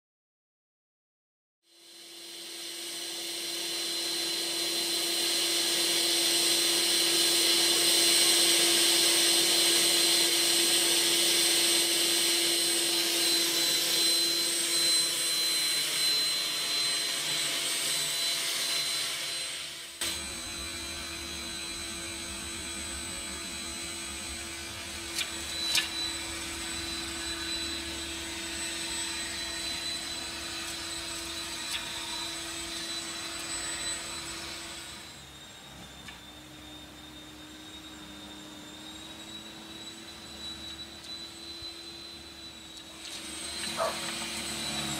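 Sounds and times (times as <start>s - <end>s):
electric snow blower running: 1.7s - 44.9s.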